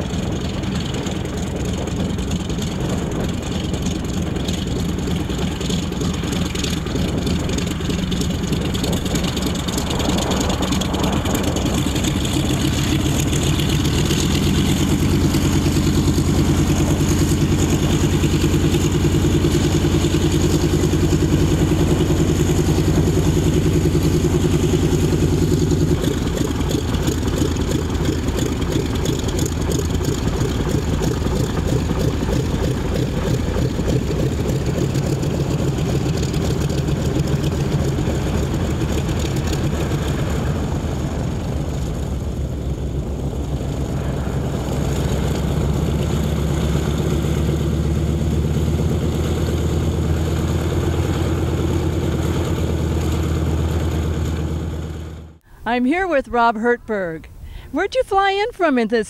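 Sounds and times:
propeller plane engine idling: 0:00.0 - 0:59.0.

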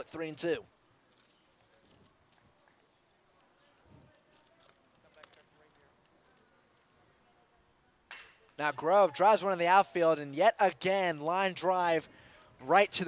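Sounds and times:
faint outdoor ballpark background: 0:00.0 - 0:13.0.

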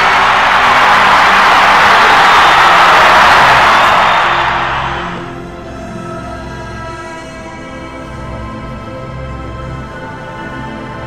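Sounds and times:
crowd cheering: 0:00.0 - 0:05.4
background music: 0:00.0 - 0:11.0.

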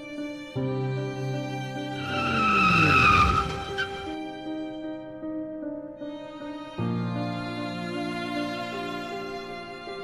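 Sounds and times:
sad string music: 0:00.0 - 0:10.0
car tyres screeching: 0:01.9 - 0:04.2
car engine braking: 0:02.0 - 0:04.2.

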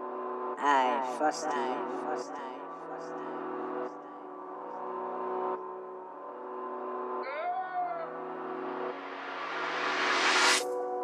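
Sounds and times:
rising noise sweep: 0:08.9 - 0:10.6.

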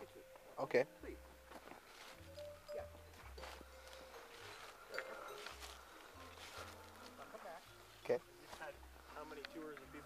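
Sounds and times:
quiet background music: 0:00.0 - 0:10.0
footsteps on wood chips: 0:01.5 - 0:02.5, 0:03.2 - 0:09.9.

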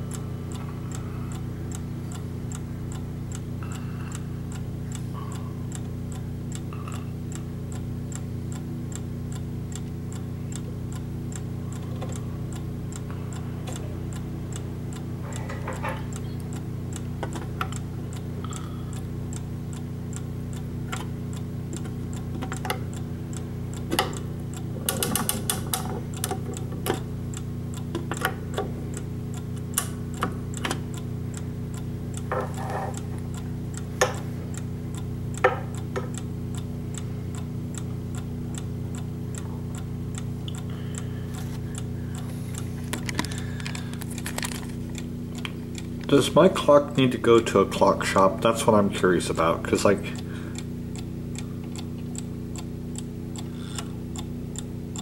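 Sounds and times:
clock ticking: 0:00.0 - 0:44.2, 0:44.8 - 0:55.0.

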